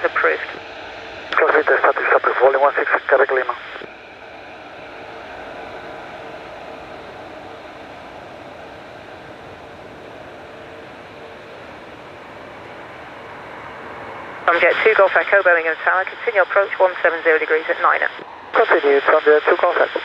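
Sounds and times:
jet engines running: 0.0 - 20.0.

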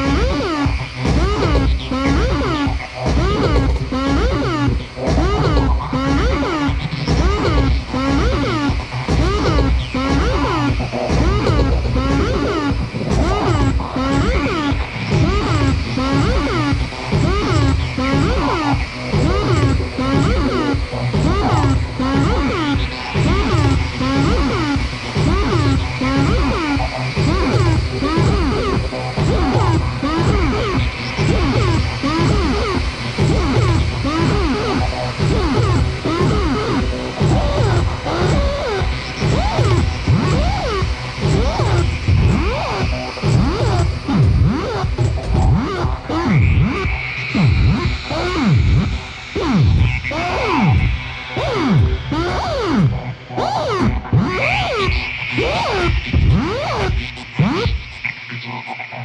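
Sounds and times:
low pulsing synth bed: 0.0 - 59.0
synthesizer pitch sweeps: 0.0 - 59.0.

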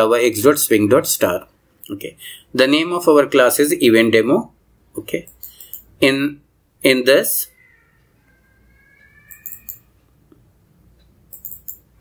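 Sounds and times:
computer mouse clicks: 5.3 - 5.9, 9.3 - 9.9, 11.3 - 11.9.

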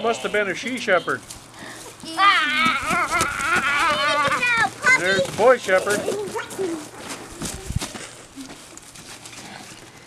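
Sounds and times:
footsteps in straw and snow: 0.6 - 9.8.

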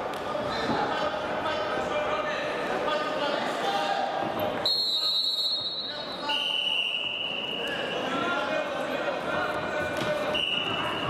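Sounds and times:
voices echoing in a hall: 0.0 - 11.0
high steady whistle: 4.6 - 8.0, 10.3 - 11.0.

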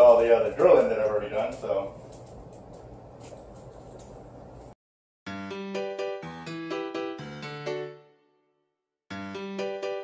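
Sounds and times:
light clicks and rustles: 0.0 - 4.8.

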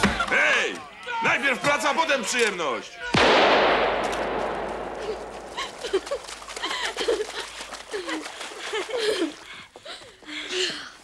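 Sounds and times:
echoing shotgun blast: 3.1 - 6.1.

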